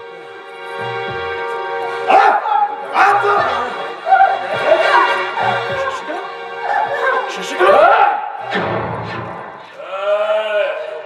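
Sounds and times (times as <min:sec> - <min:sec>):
background music with held notes: 0:00.0 - 0:09.7.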